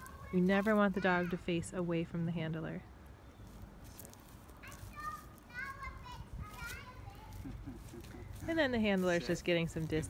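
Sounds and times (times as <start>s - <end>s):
children calling: 4.6s - 8.5s.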